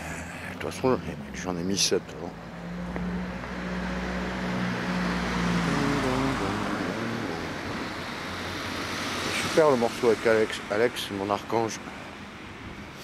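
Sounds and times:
vehicle passing: 0:00.0 - 0:13.0.

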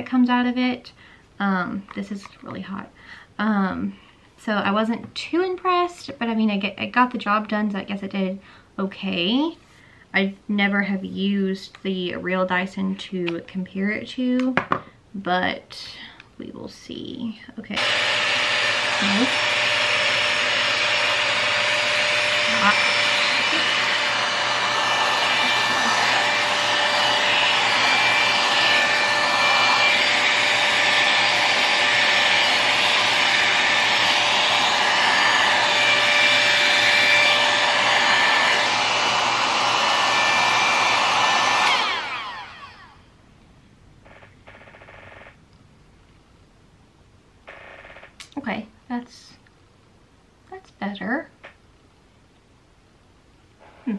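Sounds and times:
hot-air styler fan blowing: 0:17.7 - 0:43.1
motor winding down: 0:17.8 - 0:43.0.

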